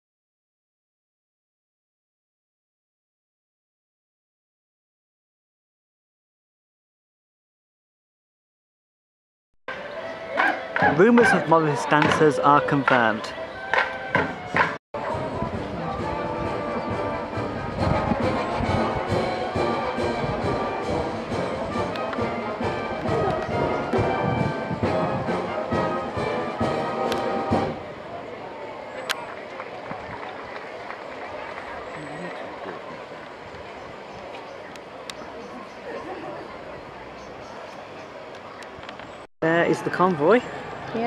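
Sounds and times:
live folk band music: 9.7s - 27.9s
street crowd murmur: 9.7s - 41.0s
sharp knocks: 12.0s - 12.3s.

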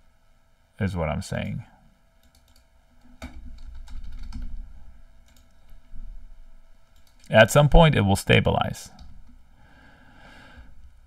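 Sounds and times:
typing on computer keyboard: 2.2s - 4.6s, 5.2s - 5.6s.

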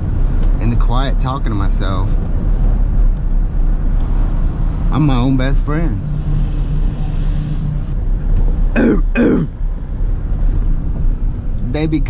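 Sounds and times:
engine drone: 0.0s - 12.0s
road rumble: 0.0s - 12.0s.

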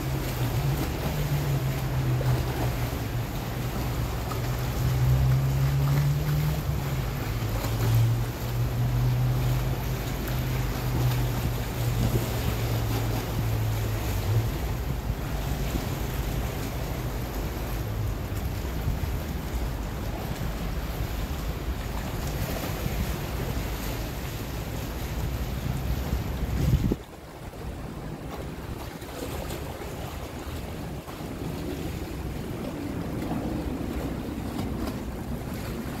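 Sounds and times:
water washing against stone steps: 0.0s - 27.0s
motorboat engine humming: 0.0s - 36.0s
wind buffeting microphone: 0.0s - 36.0s.

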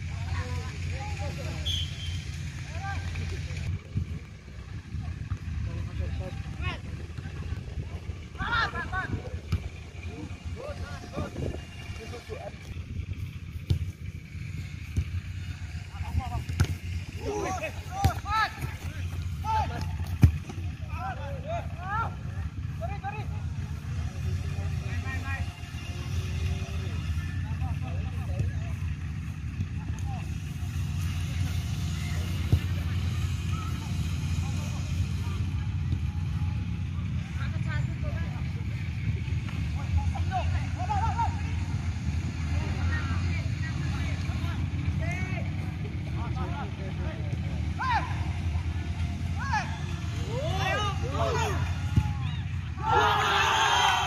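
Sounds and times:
people shouting and calling: 8.0s - 9.4s, 17.1s - 23.6s, 39.9s - 41.8s, 47.6s - 54.0s.

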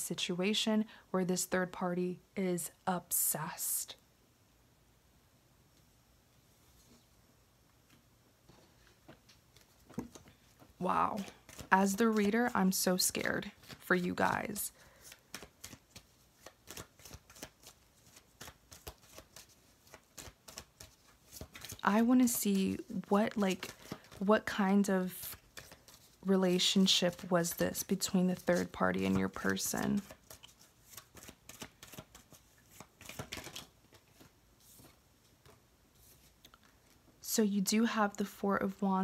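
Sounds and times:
cards being shuffled: 8.6s - 37.1s.

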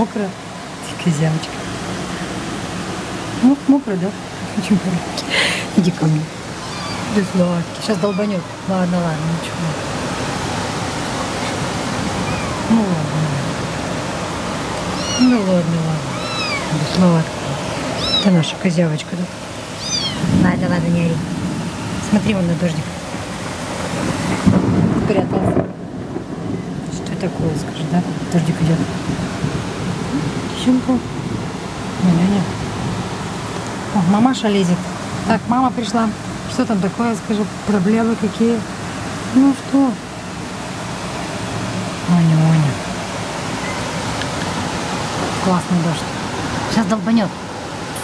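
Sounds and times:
steady rain falling: 0.0s - 48.0s
thunder rumbling: 6.2s - 18.6s, 19.8s - 33.1s.

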